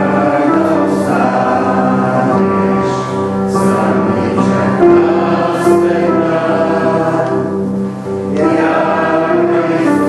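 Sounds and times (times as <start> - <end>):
choir singing a slow hymn: 0.0 - 10.0.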